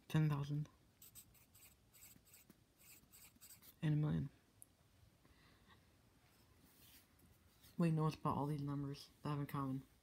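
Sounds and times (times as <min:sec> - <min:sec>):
pencil scratching on paper: 0:01.0 - 0:03.8.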